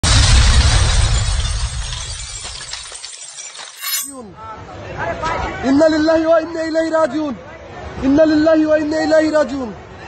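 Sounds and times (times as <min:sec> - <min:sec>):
shattering crash with deep boom: 0:00.0 - 0:03.0.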